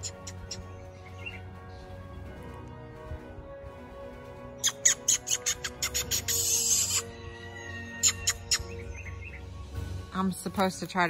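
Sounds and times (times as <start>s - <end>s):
squirrel-like chattering call: 0.0s - 0.7s, 4.6s - 7.1s, 7.7s - 9.4s
background music: 0.0s - 11.0s.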